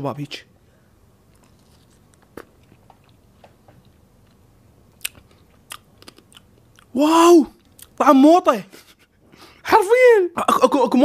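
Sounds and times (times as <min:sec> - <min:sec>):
crunchy seed clicks: 0:01.3 - 0:04.4, 0:05.0 - 0:06.9
chewing fruit pulp: 0:01.3 - 0:08.0.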